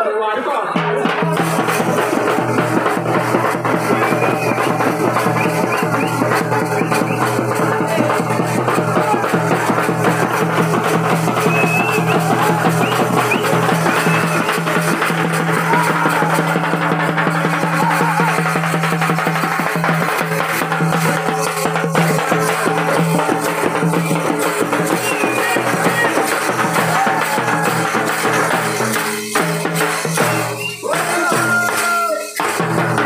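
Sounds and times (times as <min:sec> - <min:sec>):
drum beaten fast: 0:00.7 - 0:33.0
hand cymbals clashing: 0:01.1 - 0:33.0.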